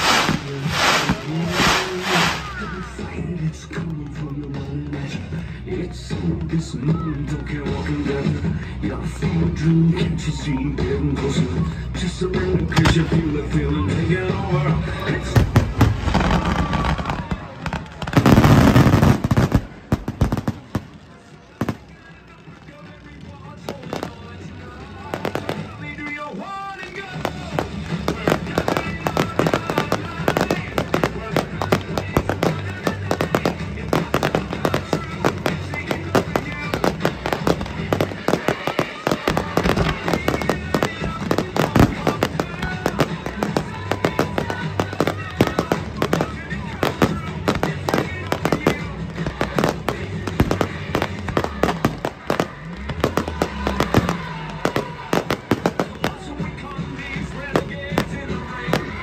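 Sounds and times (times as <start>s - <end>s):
fireworks bangs and crackles: 0.0s - 59.0s
music playing: 0.0s - 59.0s.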